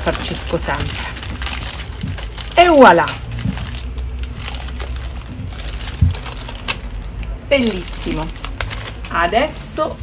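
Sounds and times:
parchment paper rustling: 0:00.0 - 0:10.0.

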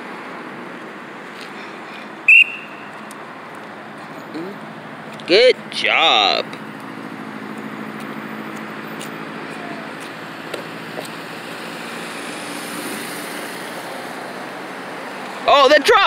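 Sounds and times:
cars passing: 0:00.0 - 0:16.0
motorcycle passing: 0:01.6 - 0:15.9.

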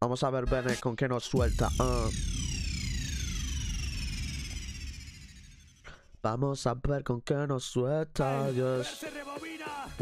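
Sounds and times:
tones sweeping downward in pitch: 0:01.4 - 0:05.9
low rumble: 0:01.4 - 0:06.0.

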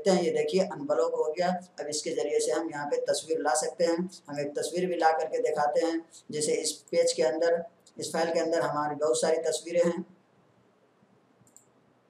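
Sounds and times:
computer mouse clicks: 0:11.4 - 0:11.8.

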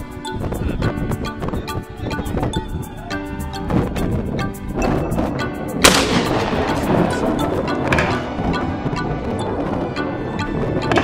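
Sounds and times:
electronic music: 0:00.0 - 0:11.0
rifle shot with echo: 0:05.8 - 0:06.8.

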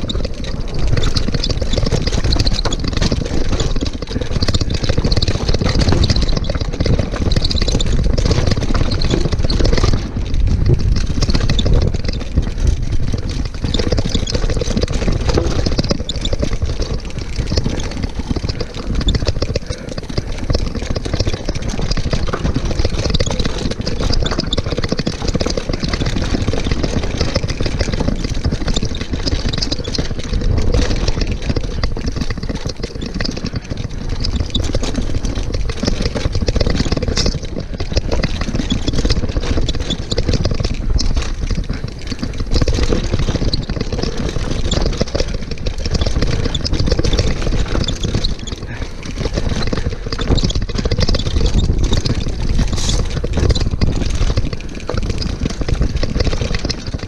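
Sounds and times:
wind rush on microphone: 0:00.0 - 0:21.1
bike rattling over rocks: 0:00.0 - 0:57.0.

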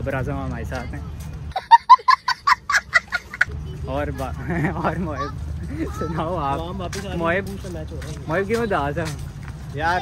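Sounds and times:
small child laughing: 0:01.5 - 0:03.6.

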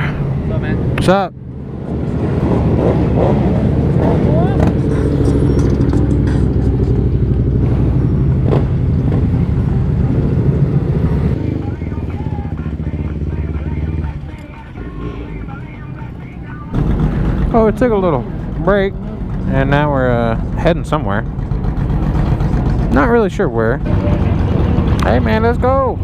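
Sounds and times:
motorcycle engine idling: 0:04.3 - 0:26.0.

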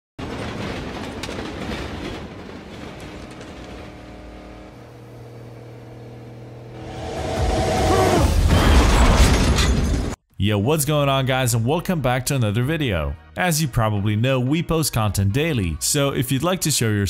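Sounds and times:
car engine and road noise: 0:00.2 - 0:08.2.

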